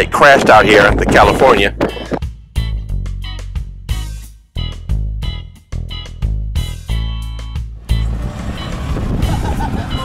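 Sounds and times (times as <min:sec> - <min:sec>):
wind rushing past microphone: 0:00.0 - 0:02.2, 0:08.0 - 0:10.0
bus engine and road rumble: 0:00.0 - 0:02.3, 0:06.6 - 0:10.0.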